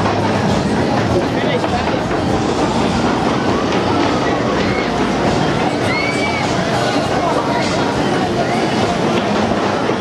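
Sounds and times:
crowd voices: 0:00.0 - 0:10.0
ride cars rattling on steel track: 0:00.0 - 0:10.0.

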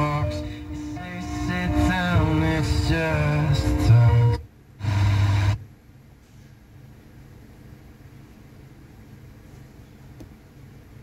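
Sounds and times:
faint steady hum: 0:00.0 - 0:11.0
car radio sound: 0:01.0 - 0:05.6.

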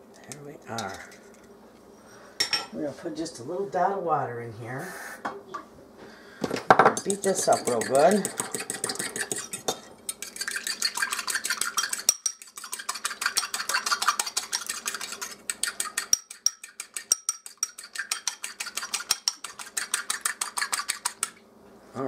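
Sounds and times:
fork beating egg in bowl: 0:07.0 - 0:21.4.

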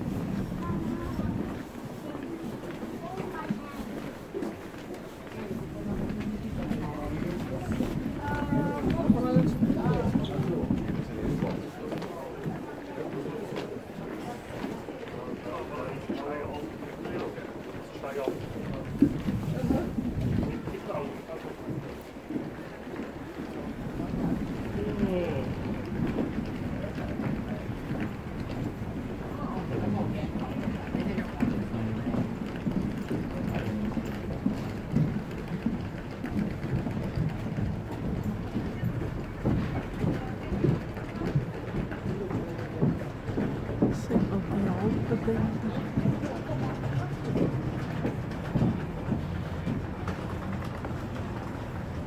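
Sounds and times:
indistinct chatter of people: 0:00.0 - 0:52.0
low background noise: 0:00.0 - 0:52.0.

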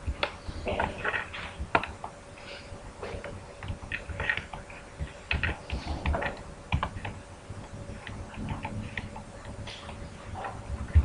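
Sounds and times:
typing on computer keyboard: 0:05.3 - 0:07.2.

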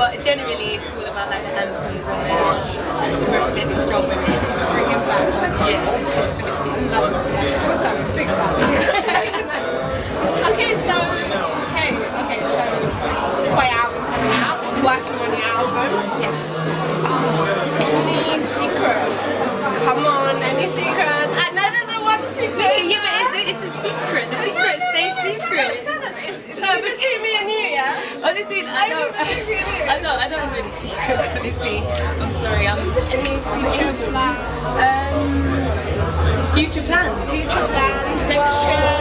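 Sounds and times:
background music: 0:00.0 - 0:27.0, 0:27.8 - 0:39.0
crowd chatter: 0:00.0 - 0:39.0
women laughing and talking: 0:06.9 - 0:12.7, 0:19.8 - 0:39.0.

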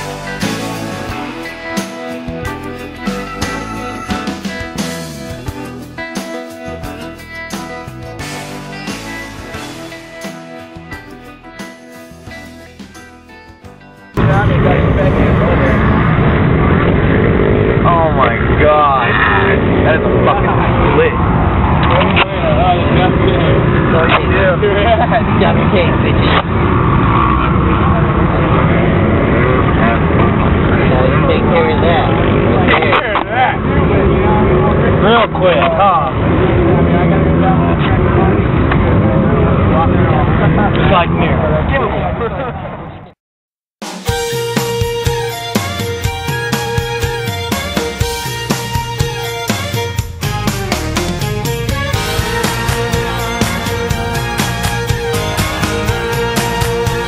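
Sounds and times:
loud engine running: 0:14.2 - 0:41.5, 0:49.4 - 0:57.0
people's voices: 0:14.2 - 0:43.2.

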